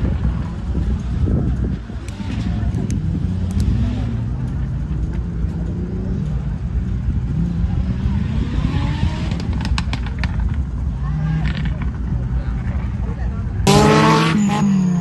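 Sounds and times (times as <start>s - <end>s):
off-road engine revving: 0.8s - 15.0s.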